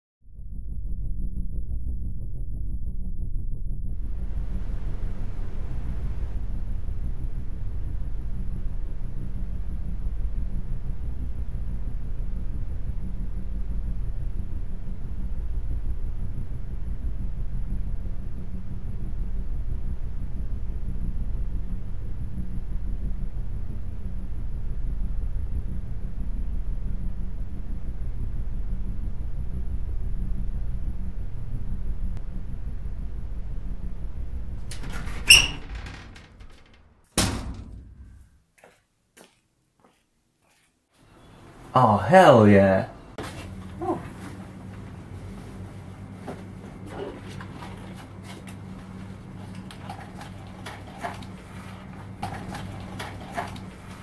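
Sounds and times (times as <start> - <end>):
low steady hum: 0.3 - 38.3.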